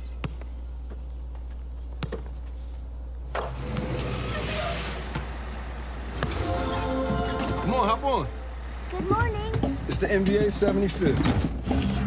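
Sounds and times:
basketball bouncing: 1.9s - 2.4s
bus engine rumble: 3.5s - 11.7s
air brakes hissing: 3.8s - 5.3s.

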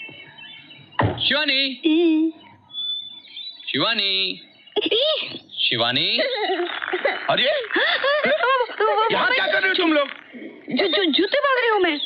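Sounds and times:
faint high chirp: 0.0s - 7.0s.

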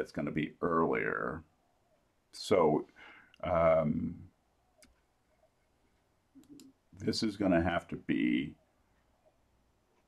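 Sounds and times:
computer mouse click: 4.8s - 5.1s, 6.4s - 6.8s.

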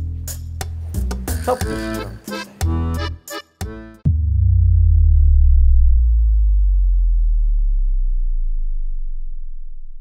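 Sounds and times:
deep bass boom: 4.0s - 10.0s.

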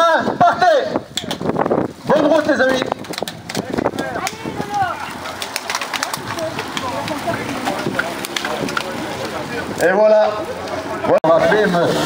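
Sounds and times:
bicycle drivetrains clicking: 1.1s - 11.1s
chatter of voices: 2.0s - 12.0s
cleats clicking into pedals: 2.4s - 9.9s.

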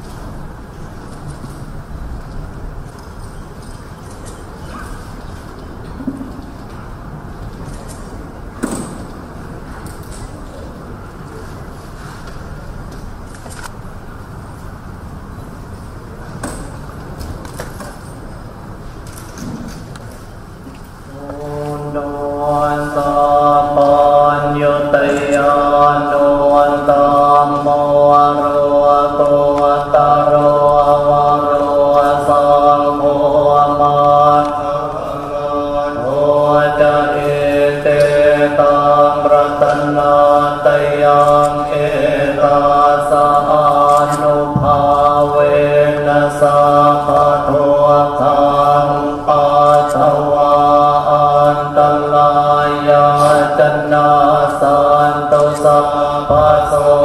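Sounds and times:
monks chanting in monotone: 7.9s - 13.1s, 19.3s - 57.0s.

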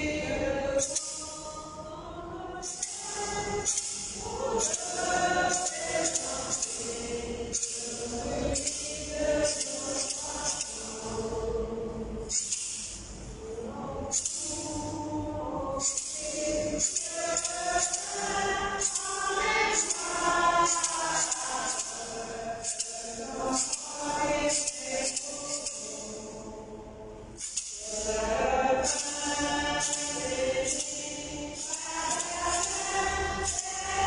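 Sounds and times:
choir singing a hymn: 0.0s - 34.0s
hand percussion rattling: 2.6s - 11.1s, 15.8s - 26.1s, 27.4s - 34.0s.

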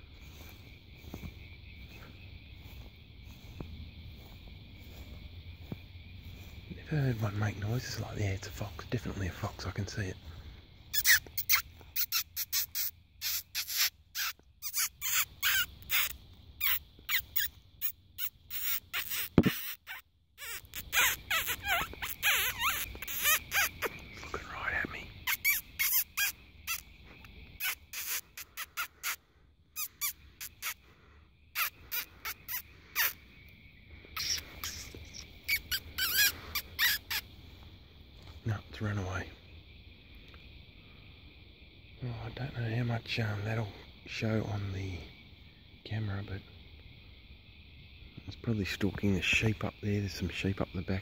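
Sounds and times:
person squeaking with lips: 11.0s - 17.5s, 18.2s - 23.9s, 25.2s - 26.8s, 27.6s - 29.2s, 29.8s - 30.8s, 31.6s - 33.2s, 34.2s - 37.2s
thump: 19.3s - 19.6s.

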